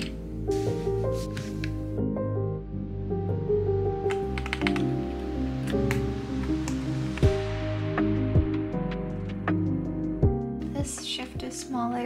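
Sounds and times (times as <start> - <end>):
background music: 0.0 - 12.0
keycaps clicking off keyboard: 4.1 - 5.0.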